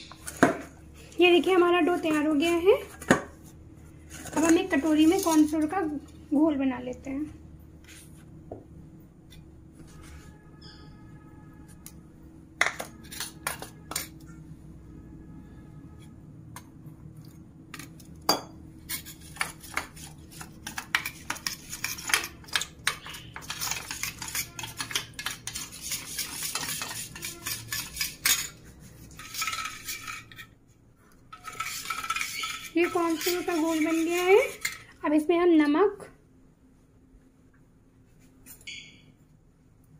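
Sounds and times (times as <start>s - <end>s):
quick stirring strokes: 18.9s - 30.4s, 31.4s - 34.8s
spoon clinking against steel bowl: 31.4s - 34.9s.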